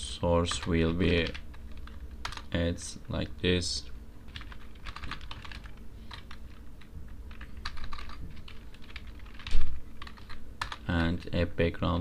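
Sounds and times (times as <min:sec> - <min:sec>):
typing on computer keyboard: 0:00.6 - 0:02.5, 0:04.3 - 0:06.6, 0:07.3 - 0:11.2.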